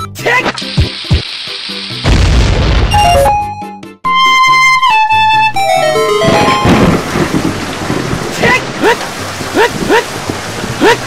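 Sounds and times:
background music: 0:02.9 - 0:09.9.

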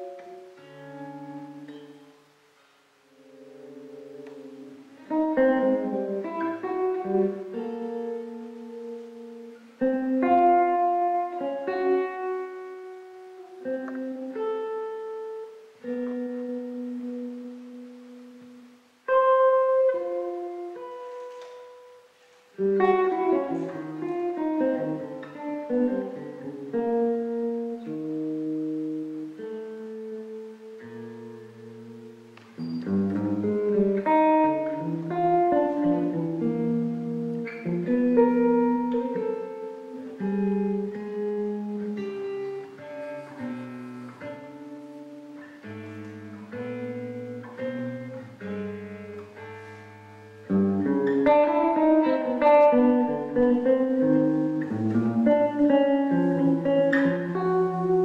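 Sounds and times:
electric guitar: 0:00.0 - 0:58.0.

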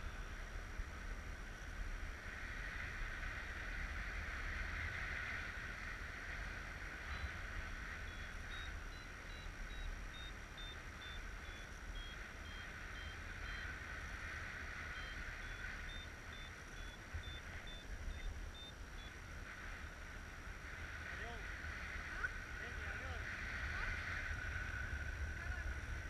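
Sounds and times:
variometer beeping: 0:08.0 - 0:13.8, 0:14.8 - 0:19.2.

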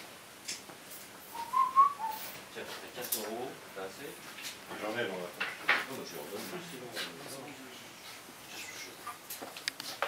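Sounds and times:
whistled notes: 0:01.3 - 0:02.2.

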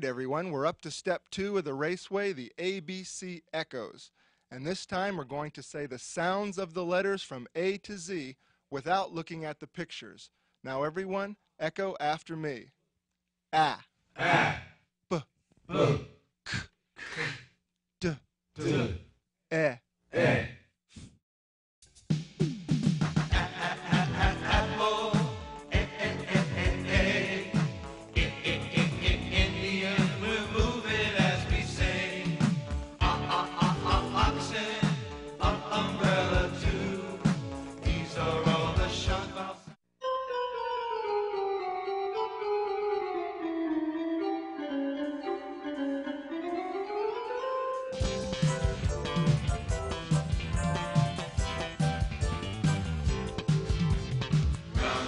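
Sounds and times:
person sounding out a letter: 0:13.5 - 0:17.4, 0:18.0 - 0:20.5
music: 0:21.8 - 0:55.0.

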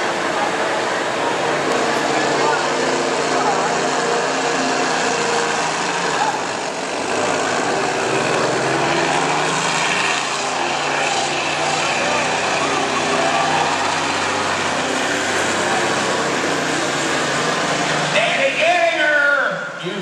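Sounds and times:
diesel truck engine under load: 0:00.0 - 0:18.4.

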